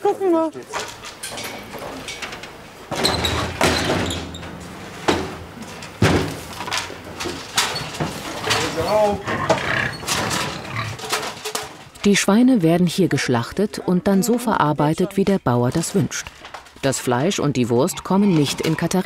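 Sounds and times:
pigs squealing in metal trailer: 7.6s - 11.4s, 17.6s - 19.0s.

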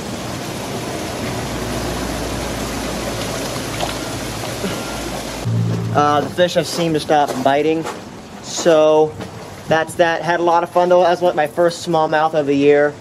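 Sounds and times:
creek water rushing: 0.0s - 9.9s.

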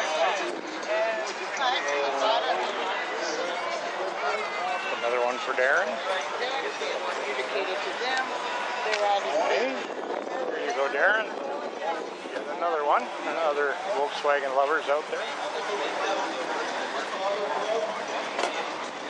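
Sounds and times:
people chatting: 0.0s - 19.0s.

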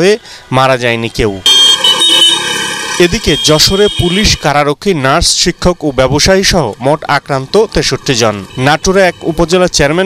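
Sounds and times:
street traffic: 0.0s - 10.0s
vehicle horn blast: 1.5s - 4.4s.

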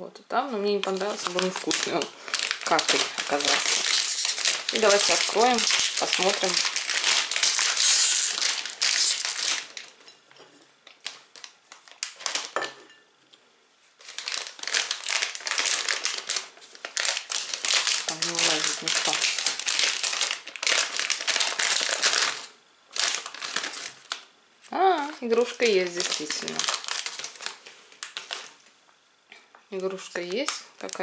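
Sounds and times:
plastic snack bag crinkling: 0.7s - 10.0s, 10.9s - 12.6s, 14.0s - 24.3s, 25.4s - 28.6s, 29.8s - 31.0s.

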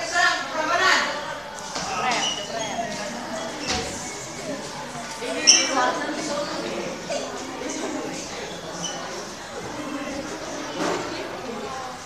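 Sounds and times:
young voices calling out: 0.1s - 10.6s.

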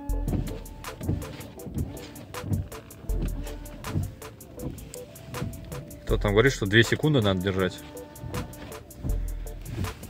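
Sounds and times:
quiet background music: 0.0s - 10.0s
windscreen washer pump hum: 0.0s - 10.0s
wipers sweeping: 0.1s - 10.0s.

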